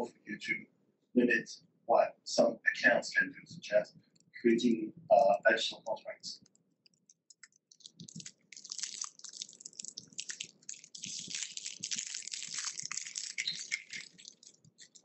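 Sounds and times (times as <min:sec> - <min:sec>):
dense crackling and rustling: 0:06.4 - 0:15.0.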